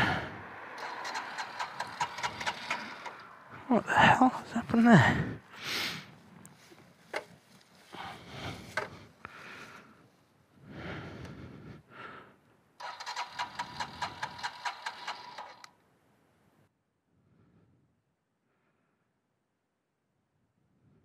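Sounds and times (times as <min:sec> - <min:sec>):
motorcycle starter cranking engine: 0:00.8 - 0:03.5, 0:12.8 - 0:15.8
rustling and handling noises: 0:06.1 - 0:09.3.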